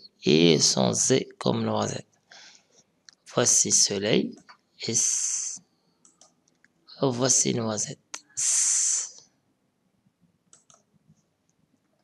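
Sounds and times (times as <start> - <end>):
breathy hiss: 4.9 - 5.6, 8.2 - 9.2
mouse and keyboard clicks: 6.0 - 6.8, 10.5 - 10.9.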